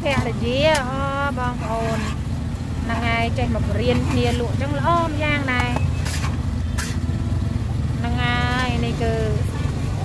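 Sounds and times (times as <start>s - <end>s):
voices talking: 0.0s - 2.2s, 2.8s - 10.0s
street traffic rumble: 0.0s - 10.0s.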